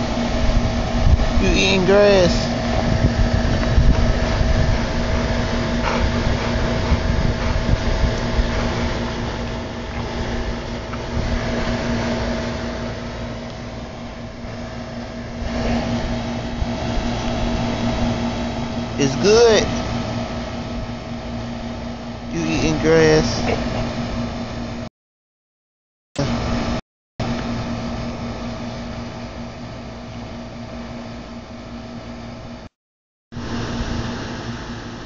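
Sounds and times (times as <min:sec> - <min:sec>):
mechanical hum with held tones: 0:00.0 - 0:24.9, 0:26.2 - 0:32.7, 0:33.4 - 0:35.0.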